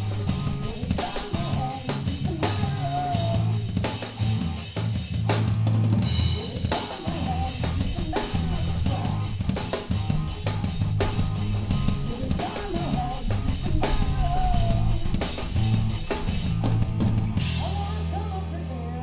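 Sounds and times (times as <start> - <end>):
drum kit pounding a beat: 0.0 - 18.4
amplified guitars: 0.0 - 19.0.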